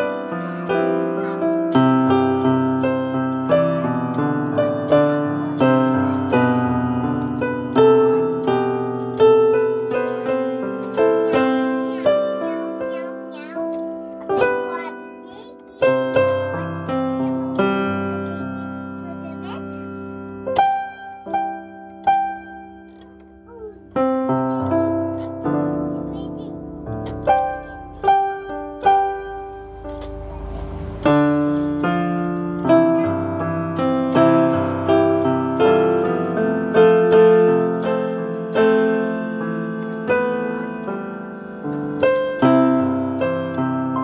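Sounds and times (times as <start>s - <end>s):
digital piano playing hymn chords: 0.0s - 44.0s.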